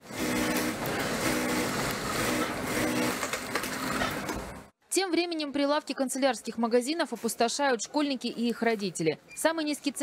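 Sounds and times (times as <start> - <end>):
sewing machines running: 0.0 - 4.7.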